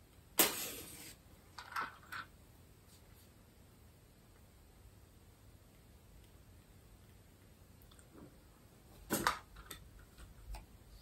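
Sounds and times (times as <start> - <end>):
faint irregular clicks: 5.6 - 8.1.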